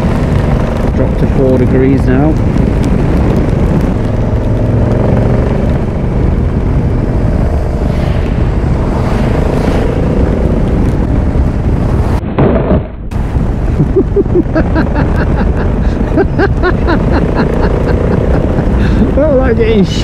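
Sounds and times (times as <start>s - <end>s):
motorcycle engine accelerating: 0.0s - 12.2s, 13.7s - 19.8s
wind noise on microphone: 0.0s - 20.0s.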